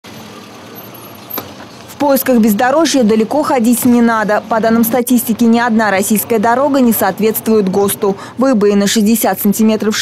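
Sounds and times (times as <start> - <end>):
car tyres on broken asphalt: 0.0 - 9.3.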